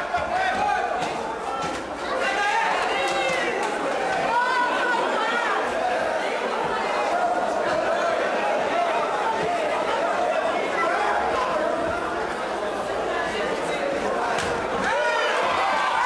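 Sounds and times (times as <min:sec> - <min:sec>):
crowd talking and shouting: 0:00.0 - 0:16.0.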